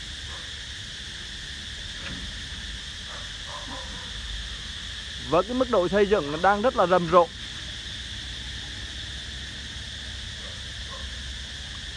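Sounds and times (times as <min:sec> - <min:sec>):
high-pitched insect drone: 0:00.0 - 0:11.9.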